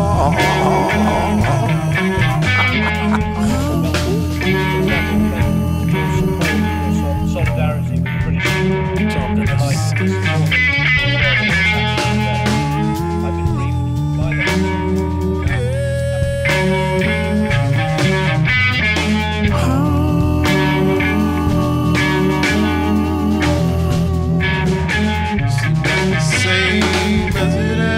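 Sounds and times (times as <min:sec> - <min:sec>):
bass guitar: 0:00.0 - 0:27.9
electric guitar bending lead notes: 0:00.0 - 0:27.9
drums: 0:06.2 - 0:27.9.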